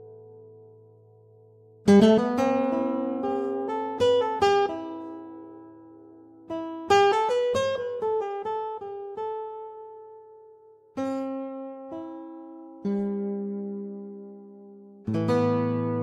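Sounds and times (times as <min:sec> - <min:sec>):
plucked guitar notes: 0:00.0 - 0:16.0.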